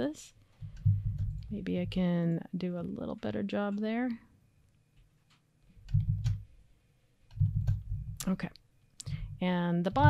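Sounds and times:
low dull bump: 0.6 - 2.1.

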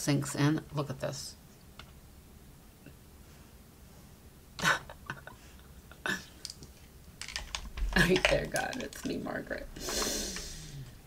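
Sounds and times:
light clicks and taps: 6.4 - 9.3
breathy vocal sound: 9.8 - 11.0.

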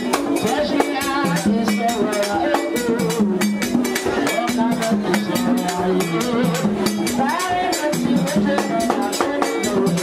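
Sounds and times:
fast drum and percussion beat: 0.0 - 10.0
voices singing: 0.0 - 10.0.

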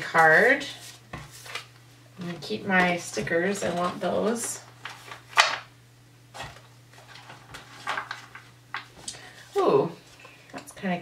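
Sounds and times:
cards rustling: 0.1 - 1.8, 2.8 - 5.7, 6.3 - 9.5.

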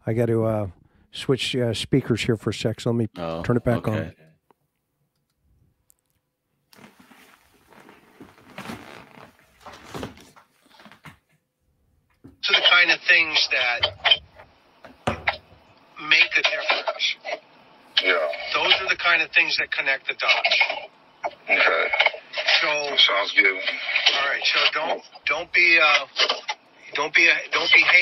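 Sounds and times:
man speaking on phone recording: 0.0 - 4.3, 12.3 - 14.3, 16.0 - 17.4, 18.0 - 28.0.

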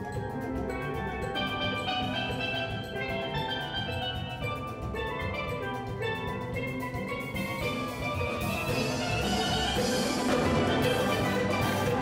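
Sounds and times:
fast percussion beat: 0.0 - 12.0
steel pans ringing: 0.0 - 12.0.

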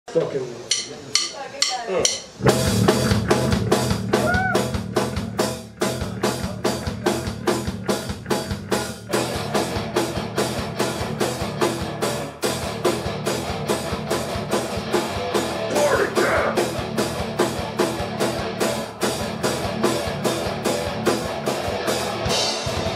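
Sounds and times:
drum kit beat: 0.7 - 22.9
rock band playing: 0.7 - 22.9
electric guitars: 2.4 - 22.9.

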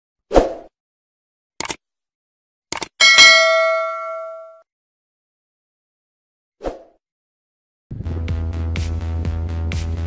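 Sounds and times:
bell chime ringing: 3.0 - 4.6.

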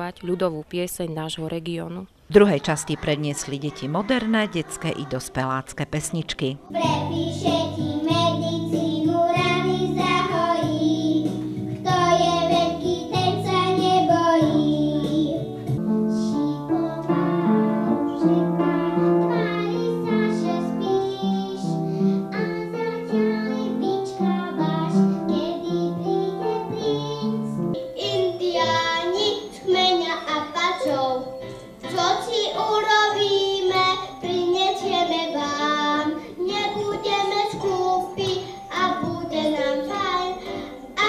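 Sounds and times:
upright piano: 6.6 - 41.0
children singing into microphone: 6.7 - 15.6, 16.2 - 41.0.

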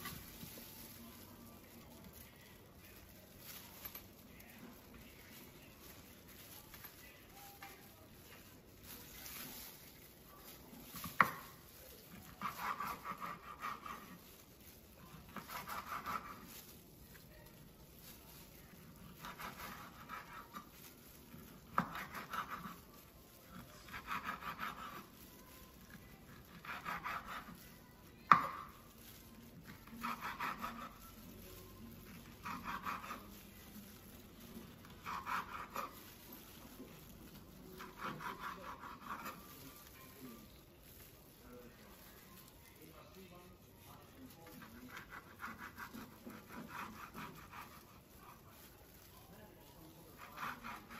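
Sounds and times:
knife slicing sausage: 8.2 - 41.2, 43.8 - 50.9.

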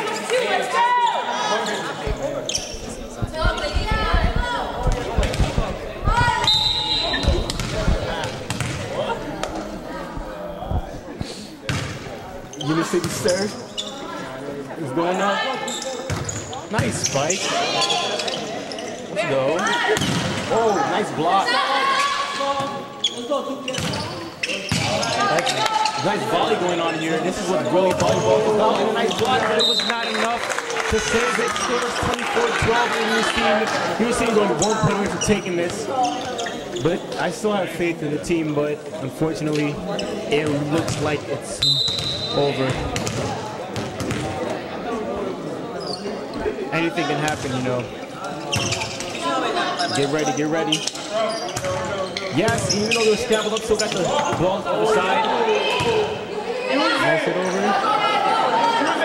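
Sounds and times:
voices echoing in a hall: 0.0 - 59.0
players thudding on wooden court: 2.0 - 12.2, 41.9 - 44.4
volleyball strikes: 2.1 - 12.1, 19.9 - 20.5, 41.8 - 44.4
whistle blast: 6.4 - 7.4, 41.6 - 42.4.

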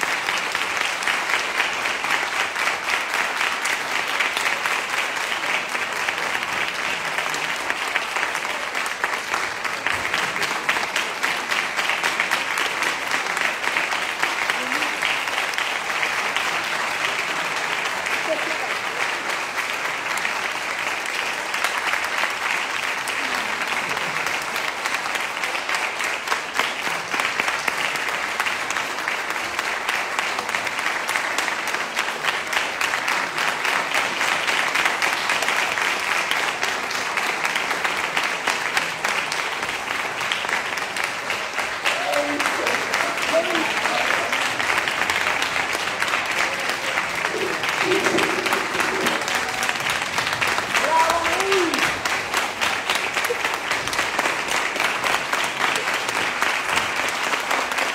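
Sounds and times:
audience applauding: 0.0 - 57.9.

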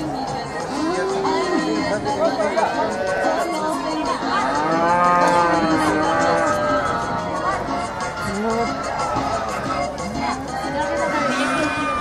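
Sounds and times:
livestock calling: 11.0 - 12.0.

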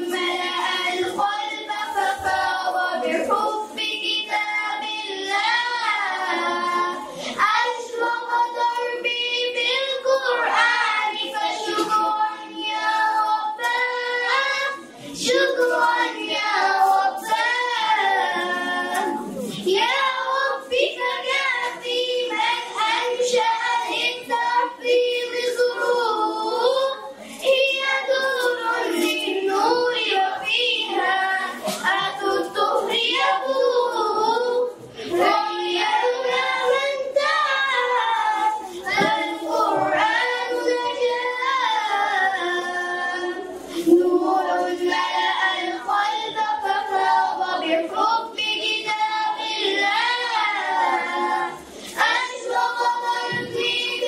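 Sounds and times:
children singing into microphones: 0.0 - 54.0.

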